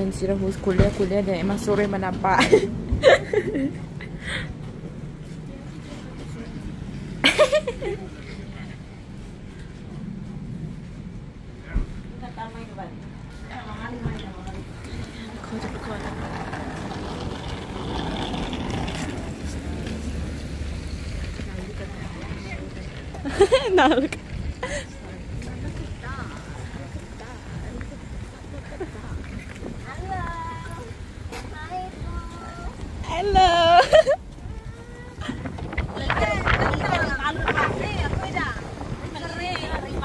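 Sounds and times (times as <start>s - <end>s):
people talking: 0.0s - 2.7s, 21.1s - 40.0s
wind buffeting microphone: 0.0s - 40.0s.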